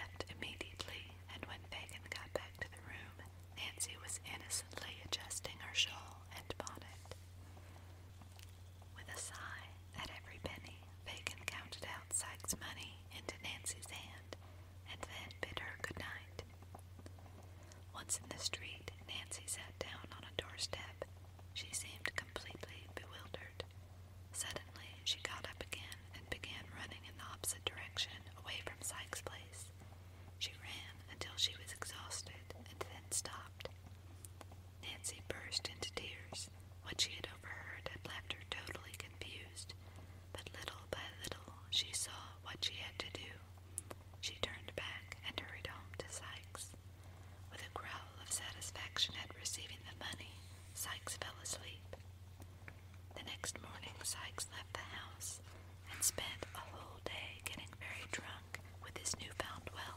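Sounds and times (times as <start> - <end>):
person whispering: 0.0 - 7.2, 9.0 - 16.5, 17.9 - 23.6, 24.4 - 29.7, 30.4 - 33.6, 34.8 - 39.8, 40.4 - 43.4, 44.2 - 46.8, 47.5 - 52.0, 53.2 - 59.9.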